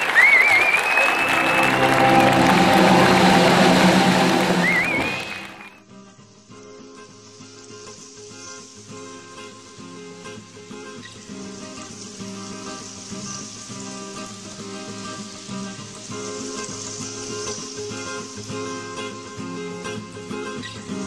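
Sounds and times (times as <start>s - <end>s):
audience applauding: 0.0s - 5.8s
live music: 0.0s - 5.8s
short wavering whistle: 0.0s - 5.8s
quiet instrumental music: 1.3s - 5.6s.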